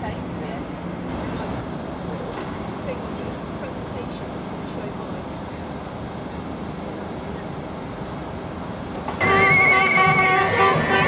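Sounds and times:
marching crowd murmur: 0.0 - 11.0.

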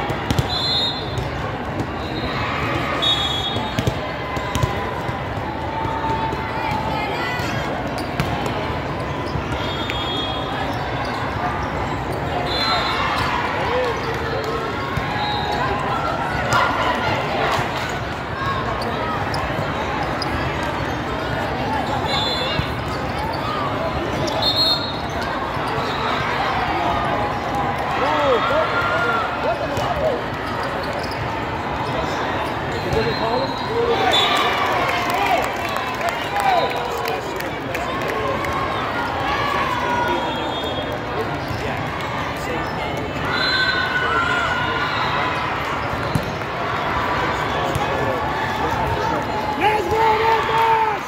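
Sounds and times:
babble of many voices: 0.0 - 51.0
shoe squeaks: 30.4 - 33.8.

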